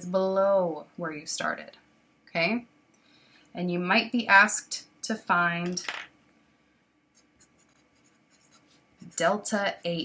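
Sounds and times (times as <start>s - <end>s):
marker writing on board: 7.2s - 9.5s.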